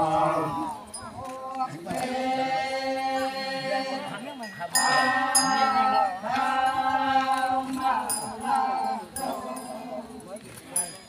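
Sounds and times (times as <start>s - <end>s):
group of voices chanting: 0.0s - 10.6s.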